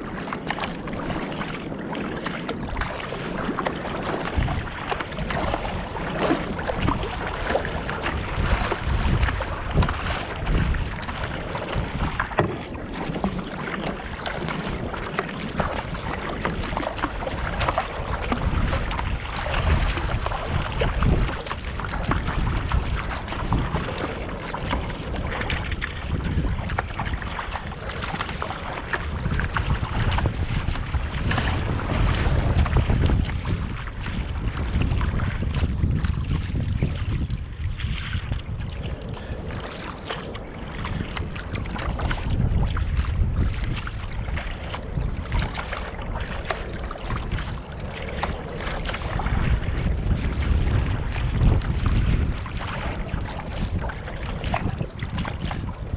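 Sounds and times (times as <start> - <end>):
water rushing and splashing: 0.0 - 55.9
wind noise on microphone: 0.0 - 55.9.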